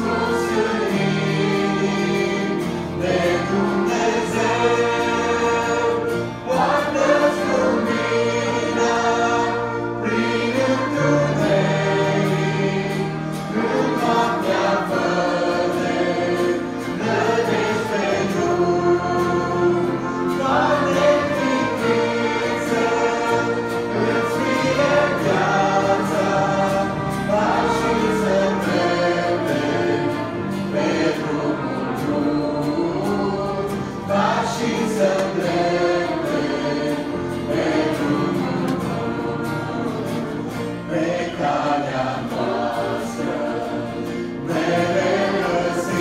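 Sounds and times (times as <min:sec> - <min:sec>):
church choir singing: 0:00.0 - 0:46.0
instrumental accompaniment: 0:00.0 - 0:46.0.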